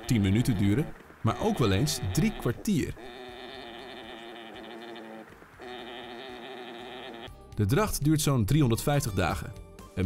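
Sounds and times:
alpaca droning call: 0.0 - 7.4.

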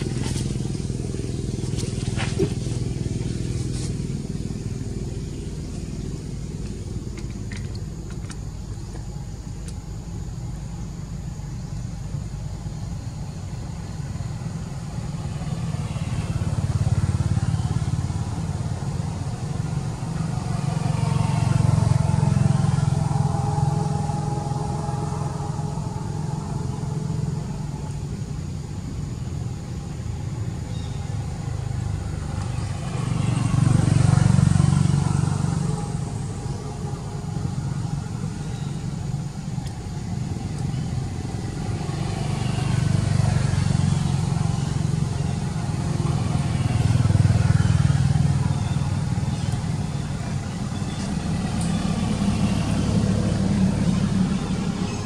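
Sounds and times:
motor vehicles passing: 0.0 - 55.0.

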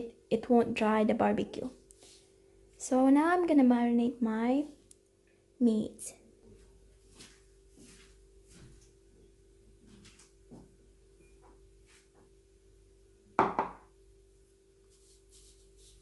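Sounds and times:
faint hum: 0.0 - 16.0
kitchenware knocking on counter: 13.4 - 13.9.

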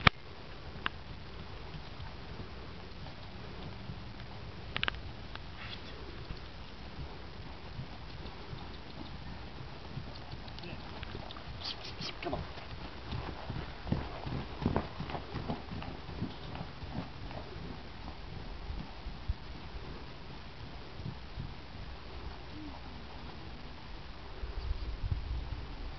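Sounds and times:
low steady rumble: 0.0 - 25.9
horse hoofbeats on dirt: 0.7 - 23.5.

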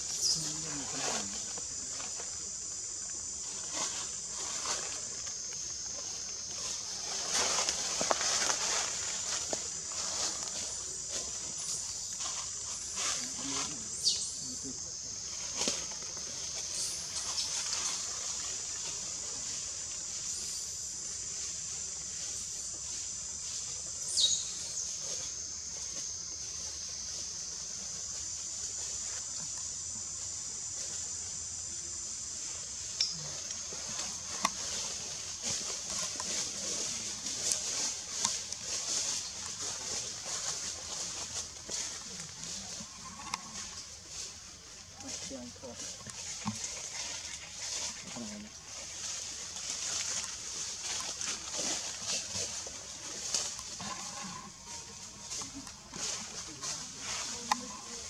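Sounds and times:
cicadas droning: 0.0 - 58.0
rustles: 0.0 - 58.0.

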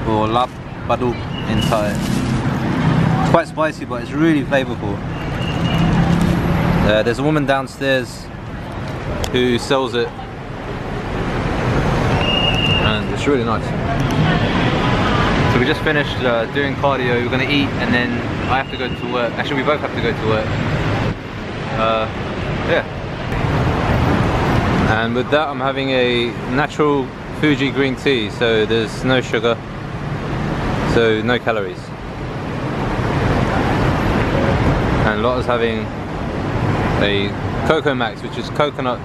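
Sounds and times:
city traffic rumble: 0.0 - 39.0.

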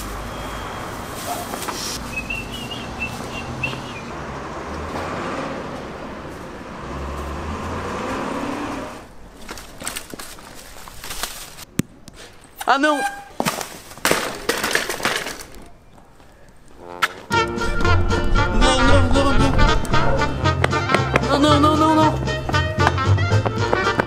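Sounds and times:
passing traffic rumble: 0.0 - 11.7, 15.4 - 24.0.

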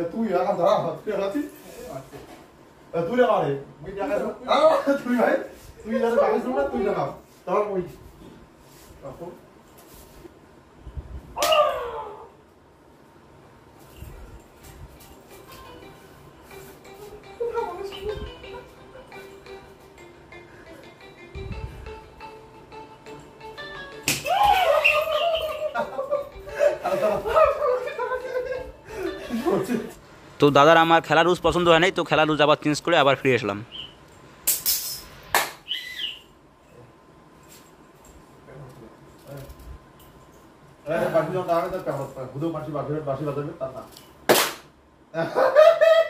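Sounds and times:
men speaking: 0.0 - 8.3, 25.8 - 33.9, 40.8 - 44.0
long wavering cry: 11.4 - 12.5, 24.2 - 29.5
sharp hand smack: 24.0 - 24.3, 34.5 - 35.6, 44.3 - 44.7
stick smacking a man: 24.0 - 24.5, 44.3 - 44.7
laughter: 24.4 - 30.0, 45.1 - 46.0.

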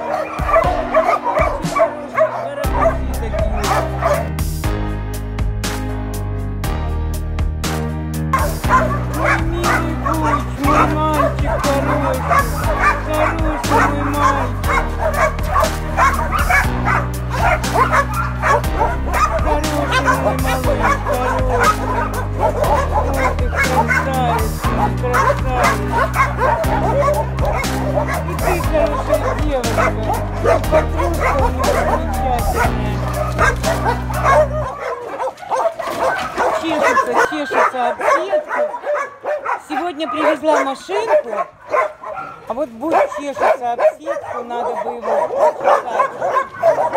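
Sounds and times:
dogs whining and yipping: 0.0 - 4.4, 8.3 - 46.9
background music: 0.0 - 46.9.

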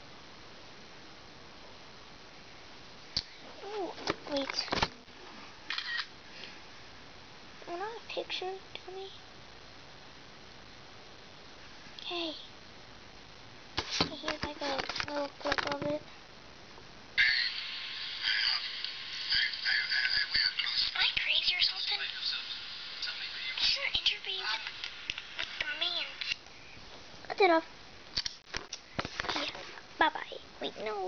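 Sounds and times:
low room background: 0.0 - 31.0
tinny video soundtrack from small speaker: 3.6 - 5.1, 13.8 - 16.2, 17.2 - 26.4
camcorder handling rustle: 13.8 - 15.9.

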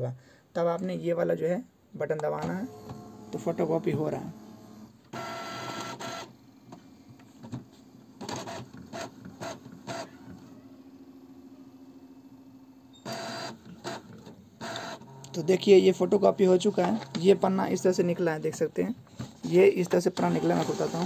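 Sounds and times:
mechanical whirs and clicks: 2.2 - 10.9, 12.9 - 21.0
printer motor whirring: 2.4 - 21.0.

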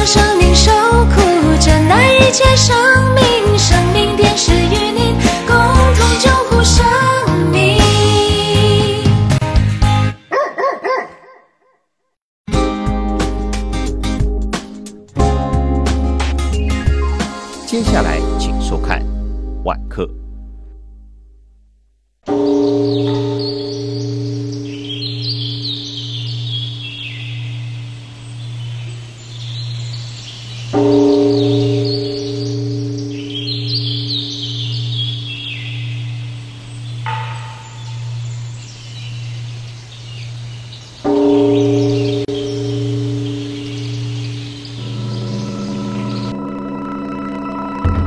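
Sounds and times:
birds chirping: 10.2 - 11.6, 16.4 - 18.8, 22.3 - 46.8
large temple bell ringing: 22.3 - 27.9, 30.8 - 40.4, 41.1 - 48.0
low wavering hum: 22.7 - 48.0.

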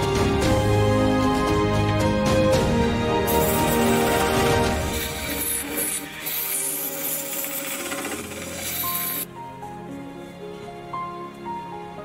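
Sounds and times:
background music: 0.0 - 12.0
wood lathe scraping: 3.3 - 9.3.

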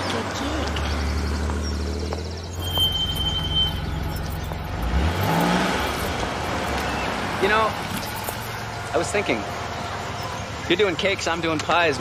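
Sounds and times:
car engine idling and revving: 0.0 - 12.0
short thin high squeal: 2.6 - 4.0.

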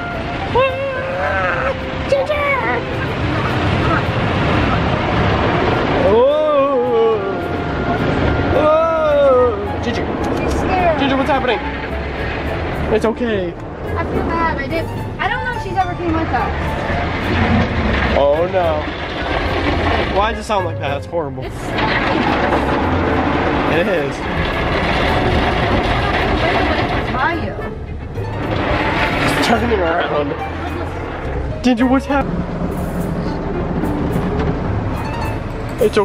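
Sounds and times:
long rising and falling cries: 0.5 - 10.2
car wash brushes and water rushing: 1.7 - 20.7, 21.4 - 36.0.

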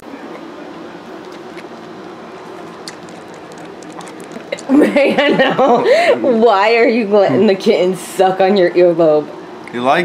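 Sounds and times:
kitten wet smacking clicks: 1.2 - 4.7.

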